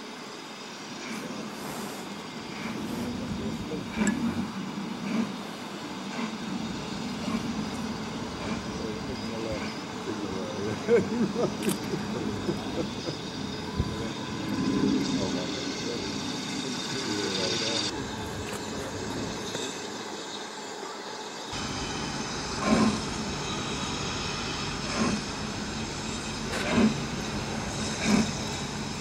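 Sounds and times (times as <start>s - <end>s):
steam locomotive exhaust beats: 0.0s - 20.8s, 21.4s - 29.0s
steam hissing: 0.0s - 29.0s
voices: 1.1s - 22.0s.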